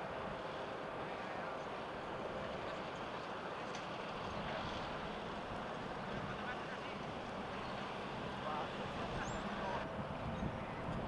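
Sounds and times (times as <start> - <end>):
outdoor background hiss: 0.0 - 10.9.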